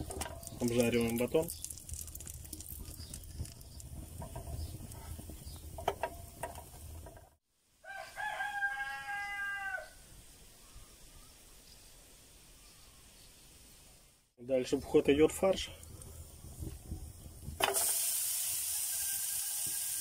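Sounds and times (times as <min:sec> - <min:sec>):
bread frying over wood fire: 0:00.0 - 0:07.4, 0:15.5 - 0:20.0
rooster crowing: 0:07.8 - 0:10.0.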